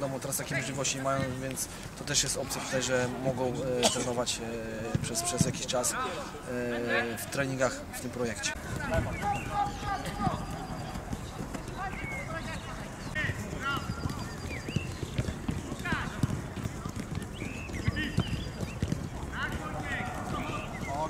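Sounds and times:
feet kicking footballs: 1.1s - 1.6s, 4.8s - 6.0s, 8.4s - 21.0s
young players calling: 8.5s - 21.0s.

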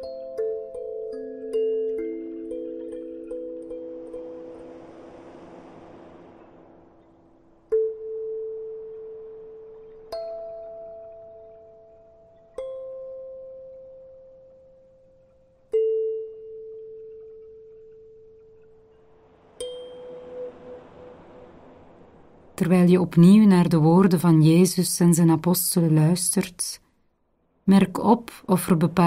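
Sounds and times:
meditative chime notes: 0.0s - 5.6s, 7.0s - 22.2s.

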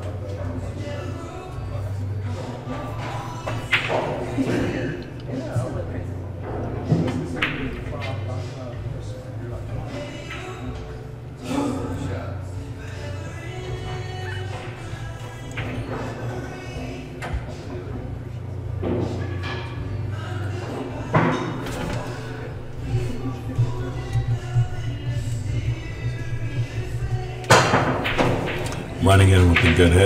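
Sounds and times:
background music: 0.0s - 30.0s
cue stick striking ball: 27.5s - 29.0s.

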